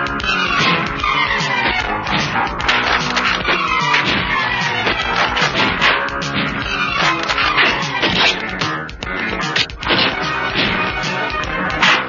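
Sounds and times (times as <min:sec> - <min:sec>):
background film score: 0:00.0 - 0:12.0.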